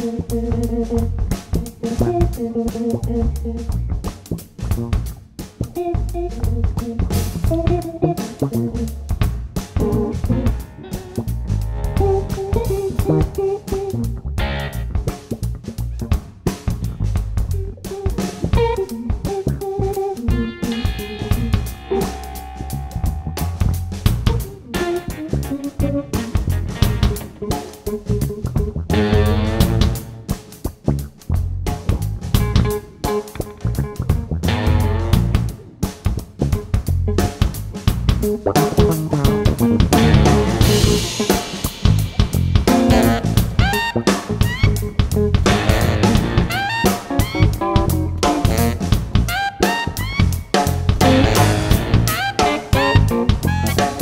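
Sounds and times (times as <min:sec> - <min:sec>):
drum kit: 0:00.0 - 0:54.0
electric bass: 0:00.0 - 0:54.0
electric guitar lines: 0:09.8 - 0:15.1, 0:17.6 - 0:30.4, 0:32.4 - 0:35.8, 0:38.2 - 0:54.0.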